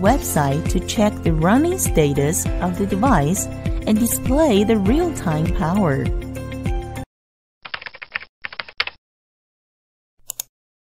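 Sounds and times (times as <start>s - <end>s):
keyboard typing clicks: 7.6s - 9.0s, 10.2s - 10.5s.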